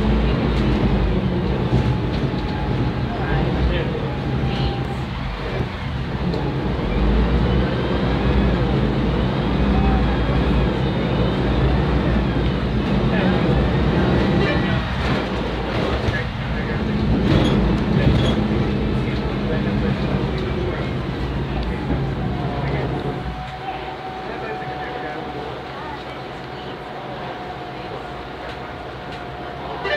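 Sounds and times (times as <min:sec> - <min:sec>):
bus diesel engine drone: 0:00.0 - 0:29.9.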